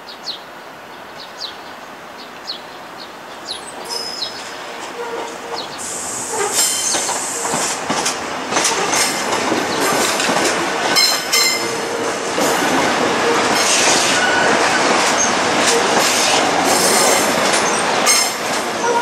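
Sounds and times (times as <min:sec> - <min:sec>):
train wheel and running noise: 0:03.5 - 0:19.0
wheels clacking over rail joints: 0:03.6 - 0:19.0
high-pitched wheel squeals: 0:14.2 - 0:14.8.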